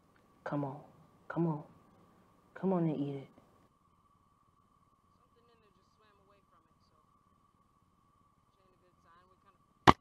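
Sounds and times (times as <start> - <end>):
faint steady high tone: 0.0 - 9.9.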